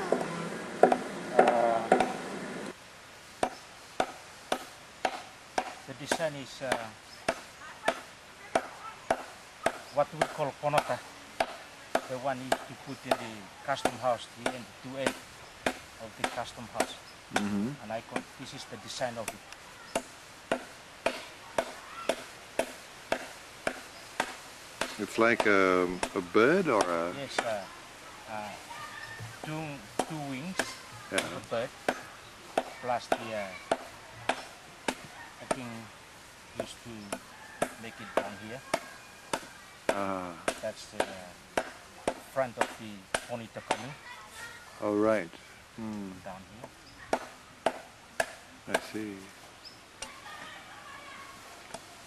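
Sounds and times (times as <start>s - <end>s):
hand tool chopping into wood: 0.1s - 2.2s, 14.4s - 17.6s, 20.0s - 27.6s, 30.0s - 32.0s, 36.6s - 43.9s.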